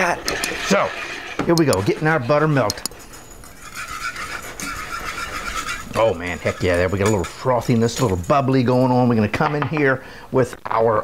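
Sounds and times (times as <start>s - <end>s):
wire whisk stirring: 0.0s - 9.2s.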